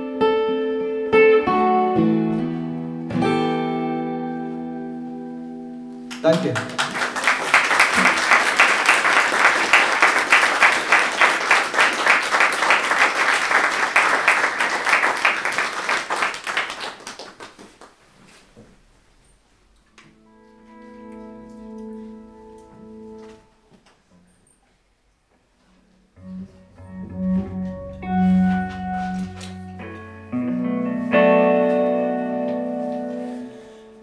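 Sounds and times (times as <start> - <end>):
electric guitar tone: 0.0 - 7.2, 19.9 - 23.7, 25.8 - 34.0
small audience applauding: 6.1 - 18.0.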